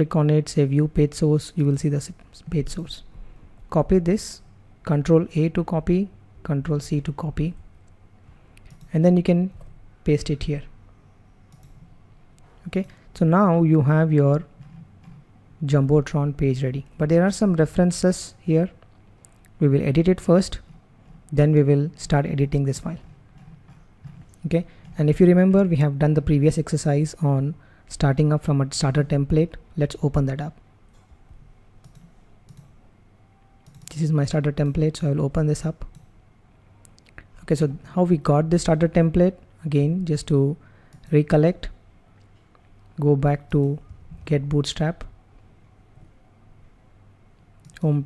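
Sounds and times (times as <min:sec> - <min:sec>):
computer mouse and keyboard clicks: 0:08.6 - 0:08.9, 0:11.5 - 0:11.9, 0:14.3 - 0:15.3, 0:22.9 - 0:25.0, 0:30.9 - 0:32.8, 0:33.6 - 0:34.0
computer mouse clicks: 0:08.6 - 0:08.9, 0:11.5 - 0:11.9, 0:30.9 - 0:32.8, 0:33.6 - 0:34.0.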